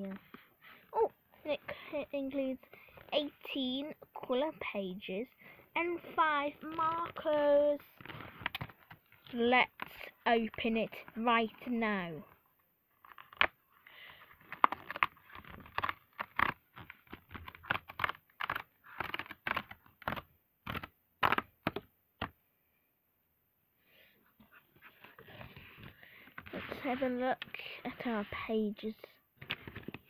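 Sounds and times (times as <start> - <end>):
paper crinkling and rustling: 12.2 - 21.4, 29.4 - 30.0.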